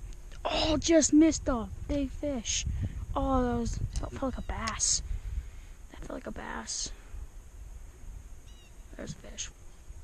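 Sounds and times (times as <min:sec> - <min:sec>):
steady low rumble: 0:00.0 - 0:10.0
high bird chirp: 0:08.4 - 0:09.1.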